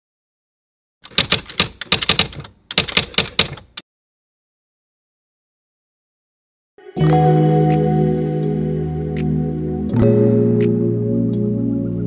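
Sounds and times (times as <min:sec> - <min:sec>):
typewriter keystrokes clacking: 0:01.0 - 0:03.8.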